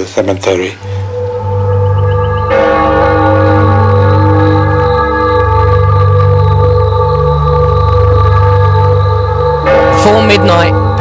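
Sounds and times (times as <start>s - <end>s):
held chords over low drone: 0.8s - 11.0s.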